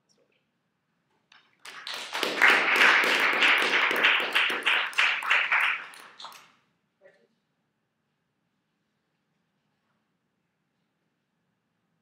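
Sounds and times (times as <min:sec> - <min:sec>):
audience applauding: 0:01.6 - 0:06.5.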